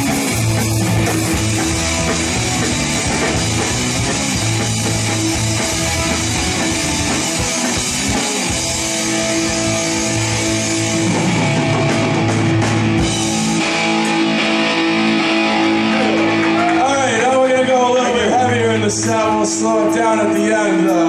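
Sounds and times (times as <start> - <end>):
live punk rock band: 0.0 - 21.0
man speaking into a microphone: 16.8 - 21.0.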